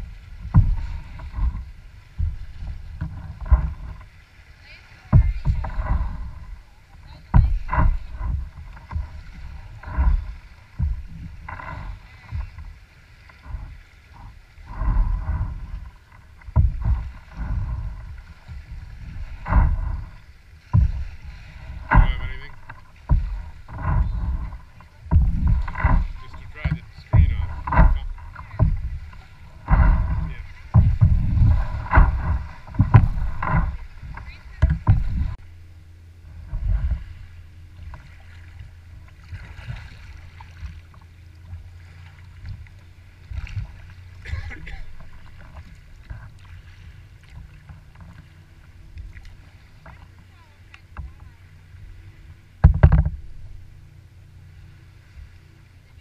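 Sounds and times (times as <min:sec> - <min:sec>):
waves over pebble shore: 0:00.0 - 0:03.4, 0:04.0 - 0:35.6
waves washing against kayak hull: 0:00.0 - 0:56.0.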